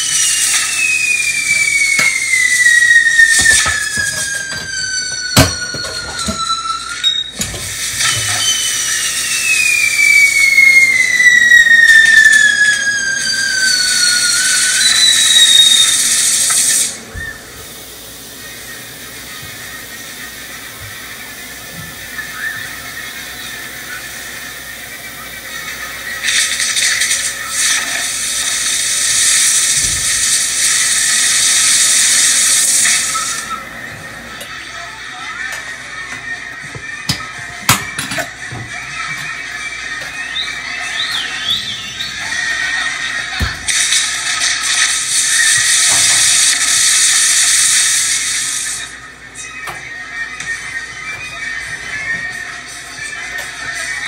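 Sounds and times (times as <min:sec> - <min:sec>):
firework sharp cracks: 0:00.0 - 0:06.5, 0:12.0 - 0:17.0, 0:26.2 - 0:33.5, 0:43.6 - 0:48.9
crackling hiss of sparks: 0:00.0 - 0:33.7, 0:40.8 - 0:49.1
firework whistles sliding down: 0:00.0 - 0:35.2, 0:38.2 - 0:49.6.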